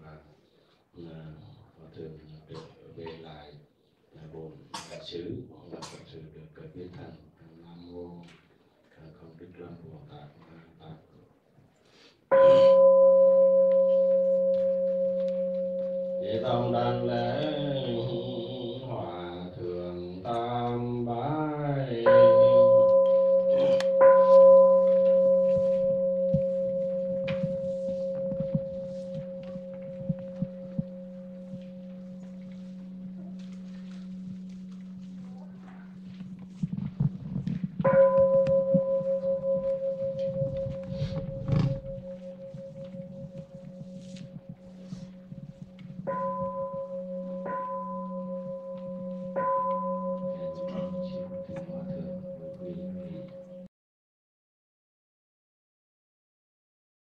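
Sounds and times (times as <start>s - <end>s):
bowl bell ringing: 12.3s - 18.8s, 22.0s - 53.7s.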